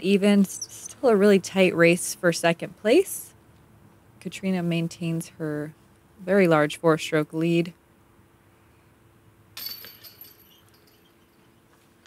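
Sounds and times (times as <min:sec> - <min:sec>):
metal chains jingling: 0:09.6 - 0:11.5.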